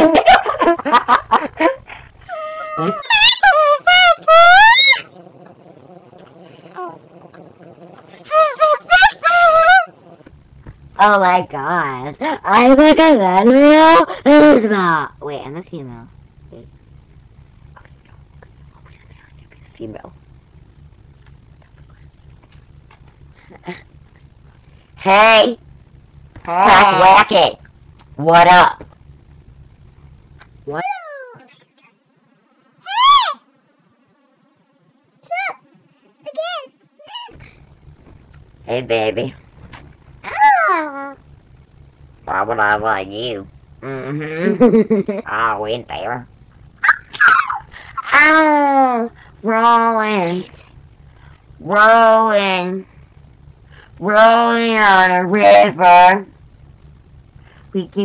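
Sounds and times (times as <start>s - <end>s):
faint room noise: 0.0s - 58.0s
low hum: 0.0s - 58.0s
girl squealing: 2.3s - 5.1s, 32.8s - 33.4s, 46.8s - 48.7s
girl speaking high-pitched: 8.3s - 9.9s, 35.3s - 35.6s, 36.2s - 37.4s, 40.3s - 41.2s.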